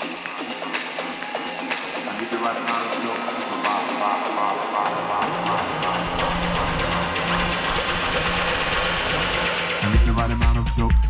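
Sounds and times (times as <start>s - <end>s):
electronic house music: 0.0s - 11.0s
heavy bass and beats: 0.0s - 11.0s.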